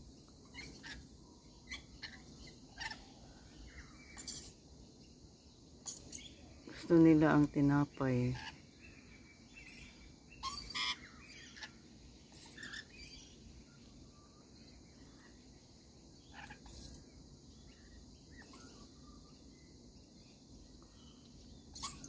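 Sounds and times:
lorikeets screeching: 0.4 - 4.6, 5.8 - 13.5, 16.2 - 19.5, 21.7 - 22.0.

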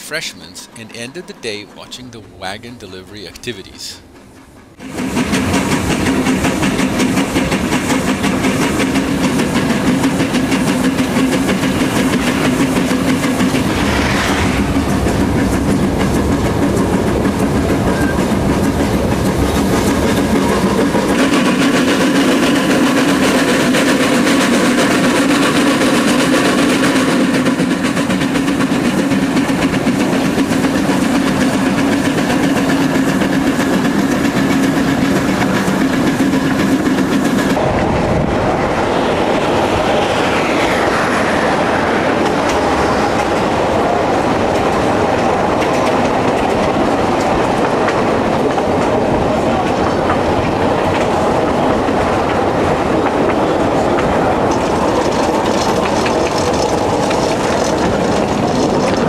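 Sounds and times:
steam locomotive running: 0.0 - 59.0
wheels on rails: 4.0 - 59.0.

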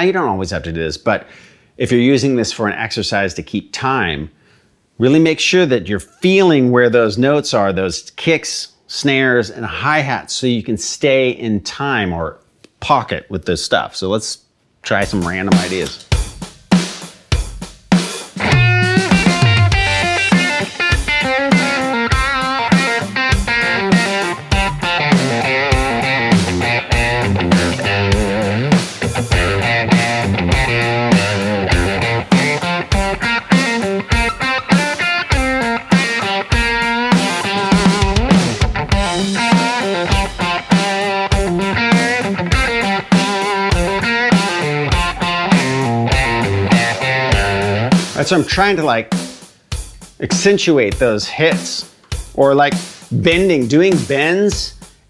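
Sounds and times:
drum groove backing track: 14.9 - 55.0
electric guitar lead licks: 18.4 - 48.5.

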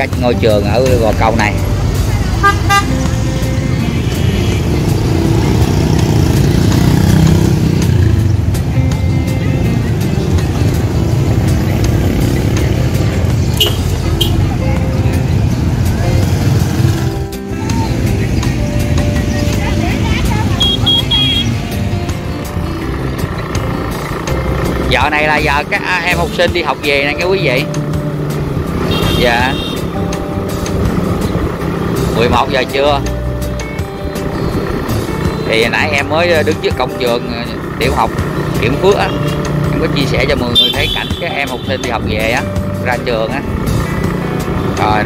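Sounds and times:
motorbike engines running: 0.0 - 45.0
motorbike horn beeps: 2.4 - 3.2, 13.5 - 14.5, 20.6 - 21.7, 28.8 - 29.9, 40.5 - 41.9.

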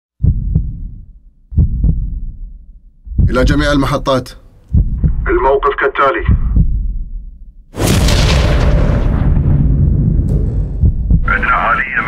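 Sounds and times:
deep heartbeat thumps: 0.2 - 11.5.

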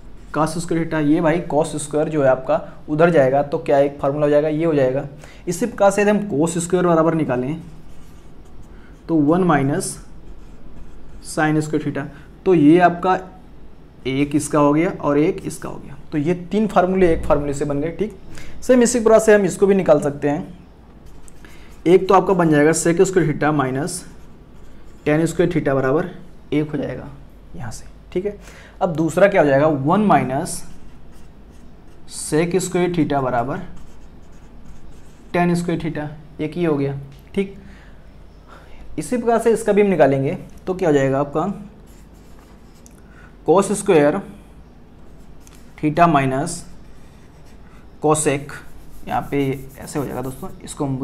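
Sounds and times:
marker scratching on whiteboard: 7.6 - 9.2, 10.0 - 11.4, 23.9 - 25.5, 30.6 - 32.8, 33.6 - 35.6, 41.8 - 42.8, 46.8 - 47.8, 48.4 - 50.7
marker writing on whiteboard: 33.6 - 35.4, 48.4 - 50.6
man speaking: 48.0 - 51.0.

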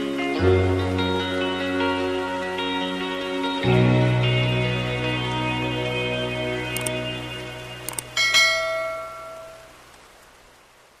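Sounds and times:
background music: 0.0 - 9.6
bright bell chime: 8.2 - 9.6.

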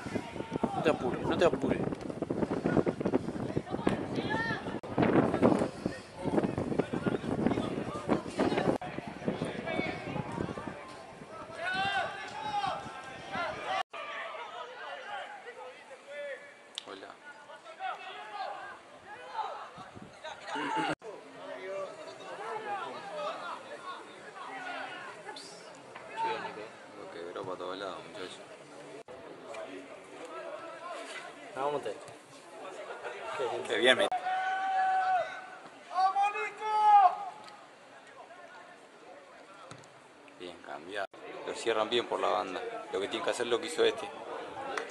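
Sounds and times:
players and spectators shouting: 0.0 - 1.3, 8.8 - 16.5, 17.5 - 25.4, 33.2 - 37.8
open-air ambience: 0.0 - 44.9
man shouting drawn-out: 34.2 - 37.3.

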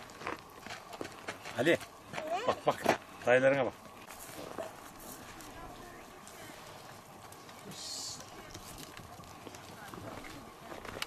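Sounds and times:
goat hooves on stony ground: 0.0 - 11.0
faint indistinct voices: 4.2 - 11.0.

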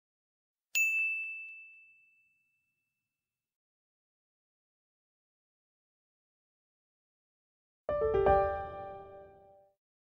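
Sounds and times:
bell-like chime ding: 0.8 - 2.8.

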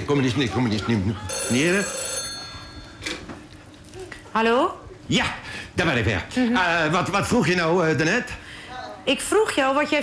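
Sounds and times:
telephone ringing: 1.3 - 3.4.

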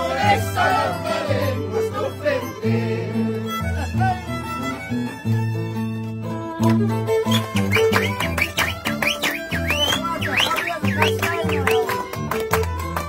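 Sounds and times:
men singing together: 0.0 - 3.5
violin: 0.0 - 13.0.

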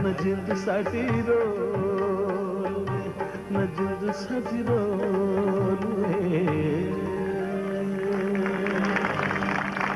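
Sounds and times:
person singing: 0.0 - 9.5
harmonium chord: 0.0 - 9.9
audience clapping: 8.1 - 9.9.

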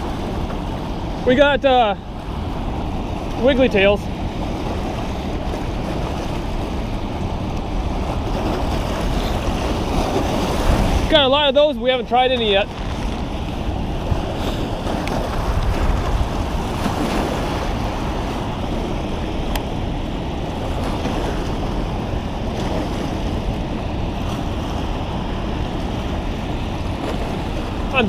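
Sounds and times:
white water rushing through spillway: 0.0 - 28.0
wind buffeting microphone: 0.0 - 28.0.

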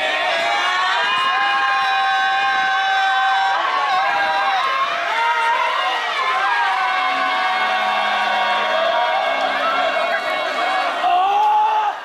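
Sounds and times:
crowd calling and chanting: 0.0 - 12.0.

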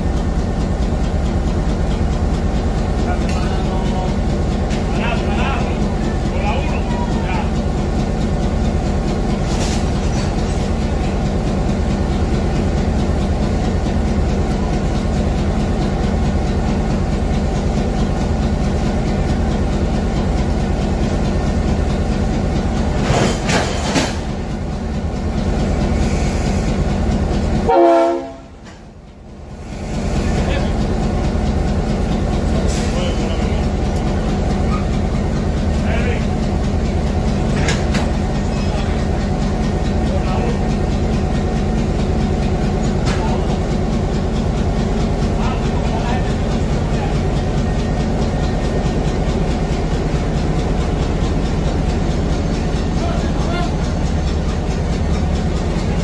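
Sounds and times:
locomotive engine idling: 0.0 - 56.0.

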